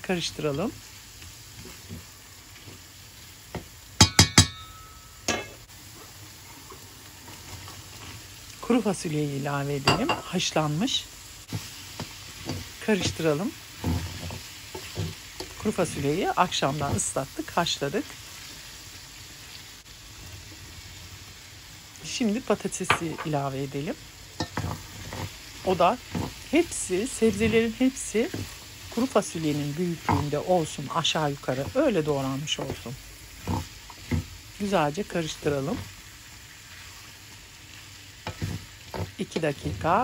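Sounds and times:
vegetables sizzling in a pan: 0.0 - 40.0
wooden spoon knocking on pan: 3.5 - 4.7, 22.9 - 23.3, 32.5 - 34.3, 38.2 - 39.9.

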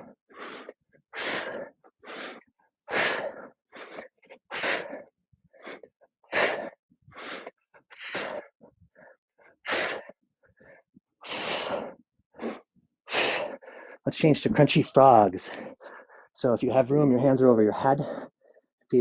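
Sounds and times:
person breathing hard: 0.0 - 14.1, 15.4 - 16.4, 18.0 - 18.7.

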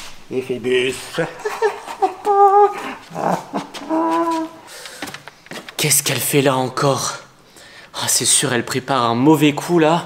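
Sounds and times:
high wordless whining voice: 1.9 - 4.7
breathy sound: 2.7 - 5.5.

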